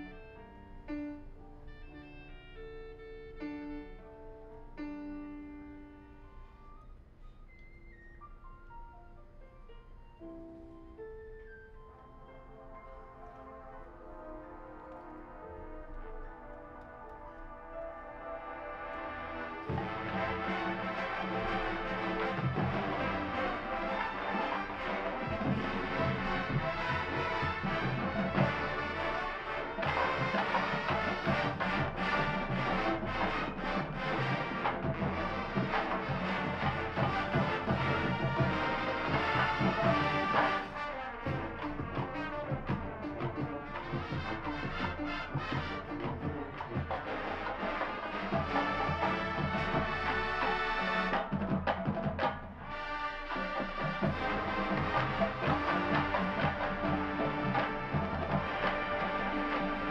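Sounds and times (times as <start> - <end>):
marching band playing: 13.3 - 59.9
drum strokes: 19.6 - 59.9.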